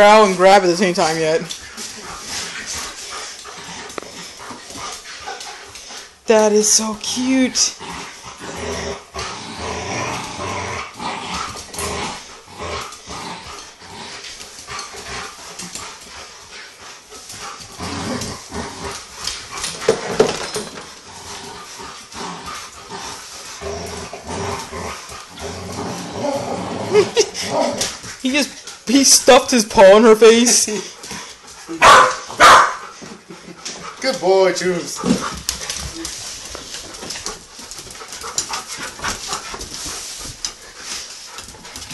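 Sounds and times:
dogs play growling: 0.0 - 41.9.

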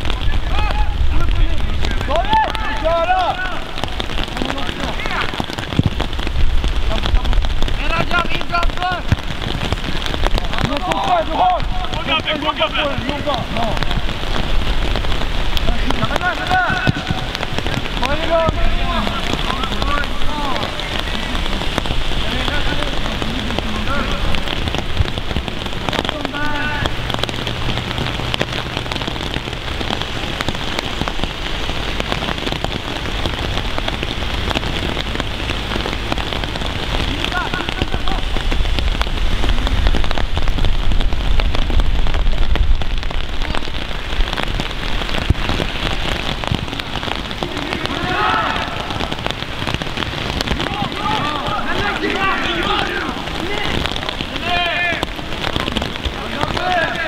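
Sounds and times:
dense ticking hiss: 0.0 - 57.0.

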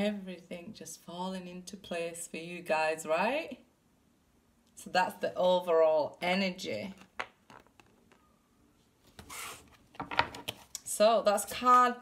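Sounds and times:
soft card rustle: 6.8 - 8.3.

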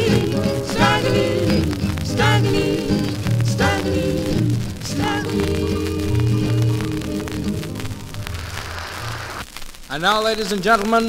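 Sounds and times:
calypso band playing: 0.0 - 8.5
vinyl record crackle: 0.0 - 11.0.

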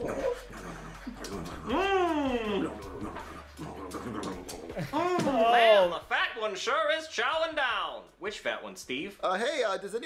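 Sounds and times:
wordless voice cries: 4.7 - 5.7.

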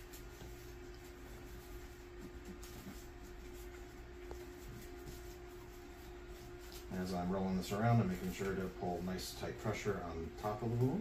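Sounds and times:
bandage rustling: 0.0 - 9.8
low room hum: 0.0 - 11.0.

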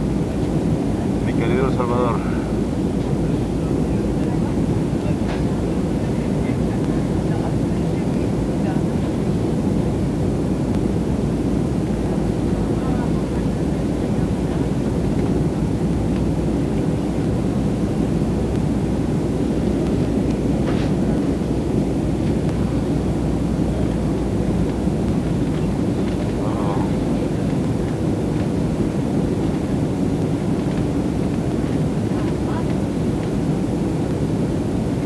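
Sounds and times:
jet engine and airflow rumble: 0.0 - 35.0.

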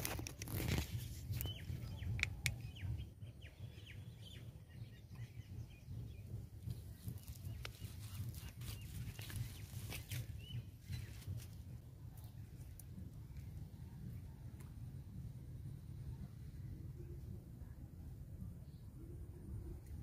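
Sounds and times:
steady low rumble: 0.0 - 20.0
birds chirping: 0.5 - 14.2.

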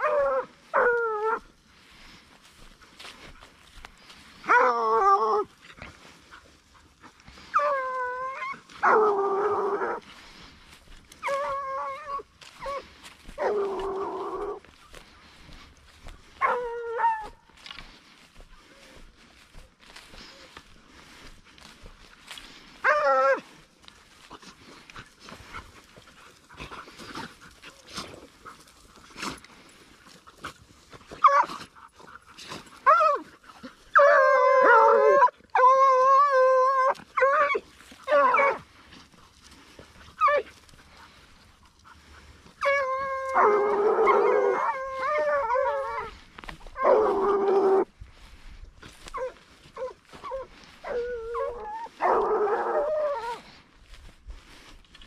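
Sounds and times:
dogs yelping: 0.0 - 1.5, 4.4 - 10.1, 11.1 - 17.6, 22.7 - 23.6, 31.0 - 38.7, 39.7 - 47.9, 49.0 - 53.6
hounds baying and howling: 0.0 - 54.8.

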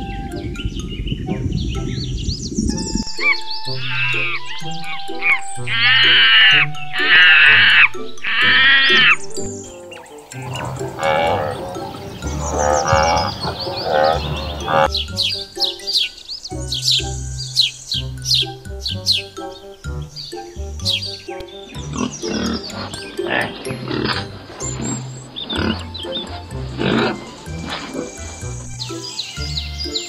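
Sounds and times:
background music with bass line: 0.0 - 30.0
monkey shrill calls: 3.1 - 9.2, 9.9 - 19.7, 20.3 - 30.0.

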